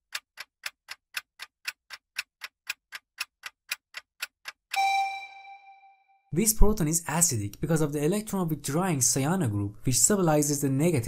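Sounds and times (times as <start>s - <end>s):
clock ticking: 0.0s - 5.6s
ringing ding: 4.8s - 6.0s.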